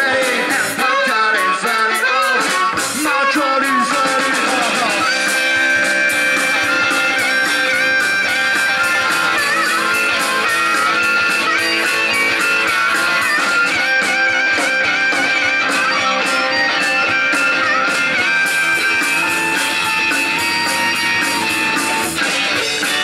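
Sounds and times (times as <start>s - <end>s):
drums: 0.0s - 23.0s
electric guitars: 0.0s - 23.0s
harmonica playing: 0.0s - 23.0s.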